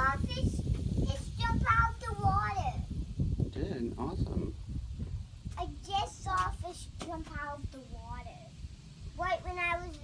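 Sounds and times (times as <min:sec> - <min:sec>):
young child singing: 0:00.0 - 0:02.9, 0:05.5 - 0:08.5, 0:09.2 - 0:10.0.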